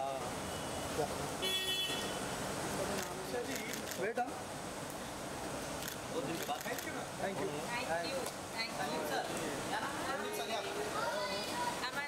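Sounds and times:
car horn honk: 1.4 - 2.2.

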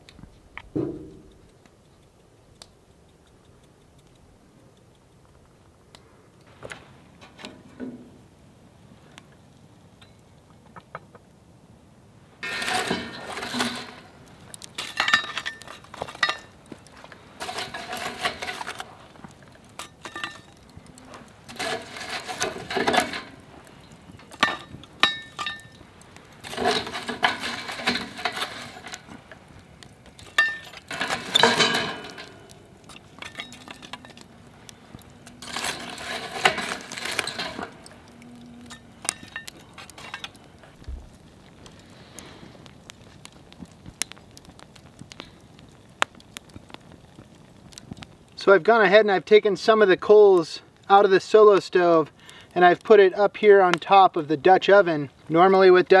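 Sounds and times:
small clicks and crackles: 0.0 - 8.1, 8.7 - 11.4, 12.2 - 56.0
metal tongs clinking and scraping: 12.4 - 14.1, 14.8 - 16.5, 17.4 - 18.9, 19.7 - 25.8, 26.4 - 29.1, 29.8 - 34.3, 34.9 - 40.4.

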